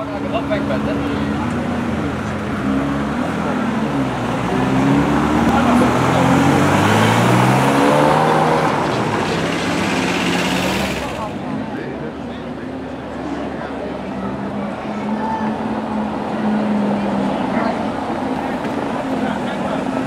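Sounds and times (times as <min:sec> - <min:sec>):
car engine revving: 0:00.6 - 0:11.5.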